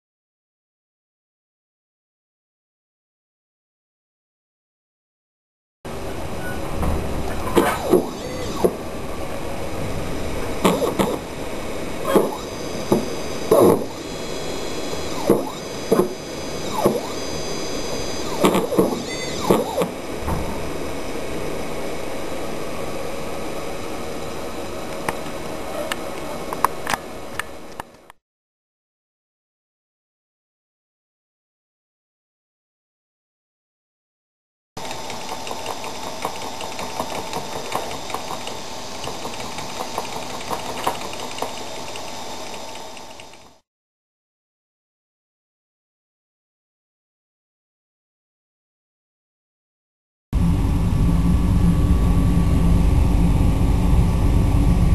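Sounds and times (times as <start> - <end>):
stepper motor whine: 5.9 - 24.7, 50.4 - 54.9
steady background hum: 5.9 - 28.2, 34.8 - 43.6, 50.4 - 54.9.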